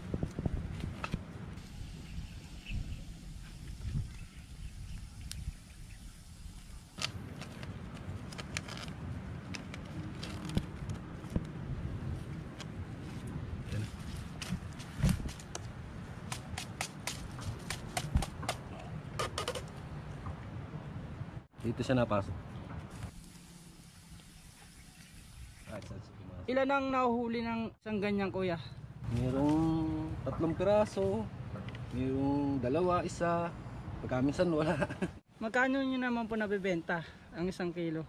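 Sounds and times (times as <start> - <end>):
clicks and rustles of wood and string: 6.9 - 11.6.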